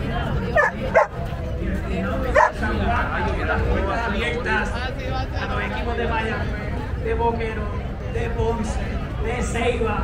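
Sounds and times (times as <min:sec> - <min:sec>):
crowd noise: 0:00.0 - 0:10.0
dog barking: 0:00.6 - 0:01.2, 0:02.4 - 0:02.6.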